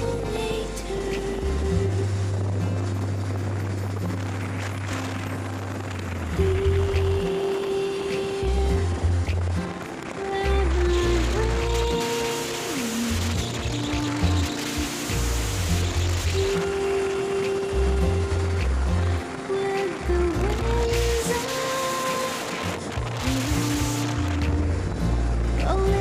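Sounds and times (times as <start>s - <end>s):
melody over held bass notes: 13.1s - 16.6s, 22.3s - 26.0s.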